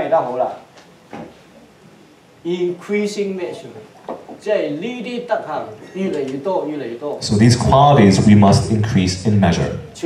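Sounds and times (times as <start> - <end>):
man speaking: 2.4 - 10.0.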